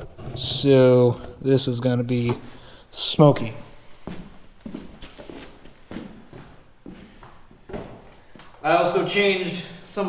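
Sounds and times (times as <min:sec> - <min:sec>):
footsteps on concrete: 0:04.0 - 0:08.6.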